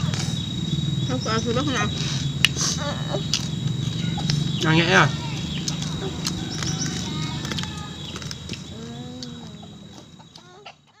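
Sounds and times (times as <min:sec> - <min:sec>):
chickens clucking: 0:01.2 - 0:11.0.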